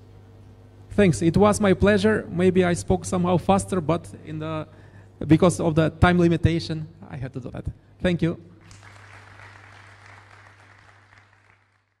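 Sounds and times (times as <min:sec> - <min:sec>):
steady low hum: 0:00.0 - 0:12.0
audience applauding: 0:08.6 - 0:12.0.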